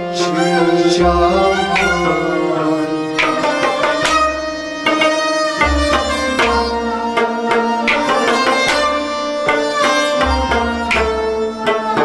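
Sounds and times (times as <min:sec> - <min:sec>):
sustained melody instruments: 0:00.0 - 0:12.0.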